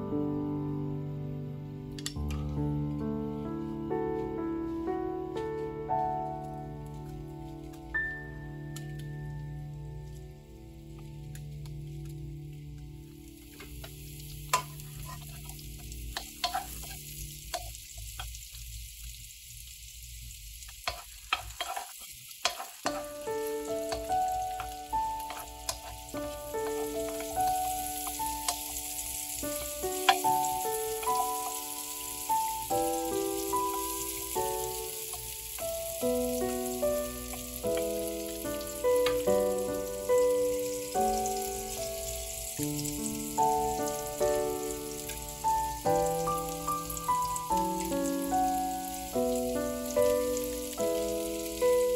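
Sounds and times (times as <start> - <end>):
chopsticks clicking: 2.0 - 2.2
mushrooms sizzling in butter: 6.0 - 51.9.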